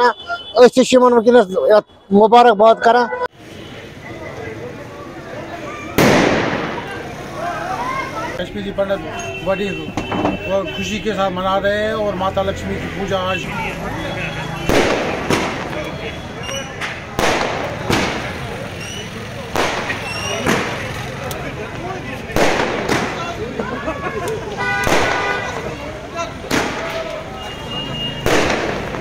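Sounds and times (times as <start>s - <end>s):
crowd chatter: 0.0s - 29.0s
firecracker bang: 5.9s - 7.1s, 14.6s - 15.8s, 16.7s - 20.9s, 22.3s - 23.4s, 24.6s - 25.6s, 26.4s - 27.2s, 28.2s - 29.0s.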